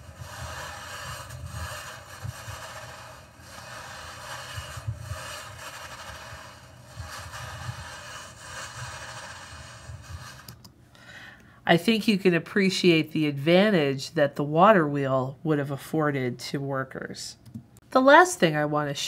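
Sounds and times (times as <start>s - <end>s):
saw grinding through stone: 0.0s - 10.6s.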